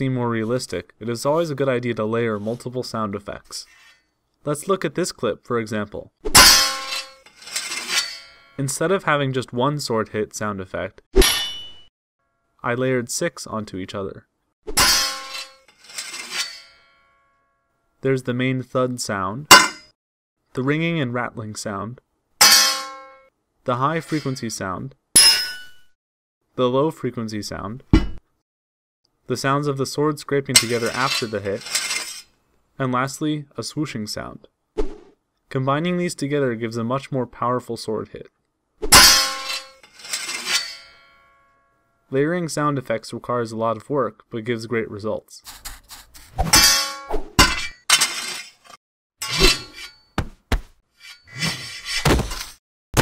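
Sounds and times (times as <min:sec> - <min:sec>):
blade scraping on blade: 0:03.7 - 0:04.1, 0:06.4 - 0:08.5, 0:14.7 - 0:17.2, 0:24.0 - 0:24.4, 0:30.6 - 0:32.3, 0:38.9 - 0:41.2, 0:45.4 - 0:50.2, 0:50.9 - 0:52.6
metallic sword clang: 0:06.4 - 0:07.2, 0:11.2 - 0:11.9, 0:14.7 - 0:15.6, 0:19.5 - 0:19.9, 0:22.4 - 0:23.3, 0:25.2 - 0:25.9, 0:38.9 - 0:39.8, 0:46.4 - 0:47.8, 0:49.2 - 0:50.1
metal clanging: 0:06.4 - 0:08.6, 0:11.2 - 0:11.9, 0:14.8 - 0:17.0, 0:19.5 - 0:19.9, 0:22.4 - 0:23.2, 0:38.9 - 0:41.5, 0:46.4 - 0:53.0.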